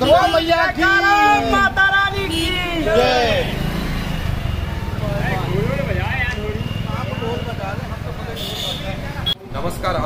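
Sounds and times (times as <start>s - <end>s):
men calling out: 0.0s - 4.0s.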